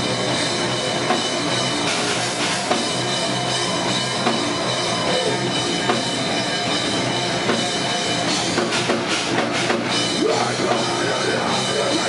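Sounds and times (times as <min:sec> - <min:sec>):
bass guitar: 0:00.0 - 0:12.0
distorted electric guitars: 0:00.0 - 0:12.0
drum kit: 0:00.0 - 0:12.0.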